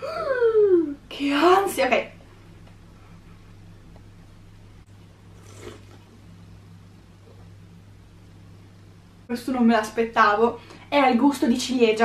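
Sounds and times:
steady low hum: 0:00.0 - 0:12.0
person gulping a drink: 0:05.3 - 0:06.2.

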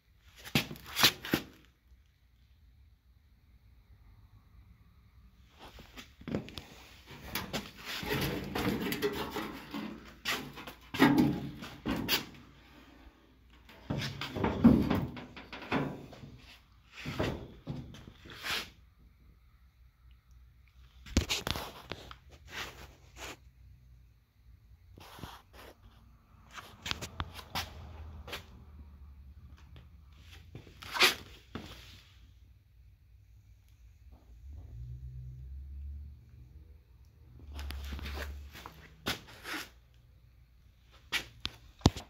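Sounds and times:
sheet metal clunking and scraping: 0:07.1 - 0:12.5, 0:13.6 - 0:18.0.

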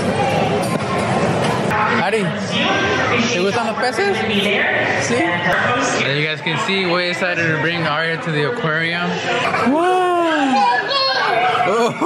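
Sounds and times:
indistinct crowd voices: 0:00.0 - 0:12.0.

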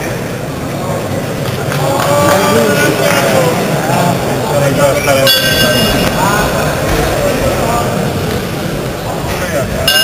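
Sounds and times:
crowd noise: 0:00.0 - 0:10.0
boxing ring bell: 0:05.2 - 0:06.0.

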